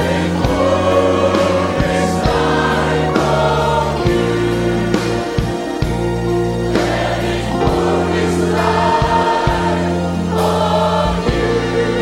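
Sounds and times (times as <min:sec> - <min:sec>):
drum hits: 0:00.0 - 0:06.1
choir singing: 0:00.0 - 0:12.0
low bass notes: 0:00.0 - 0:12.0.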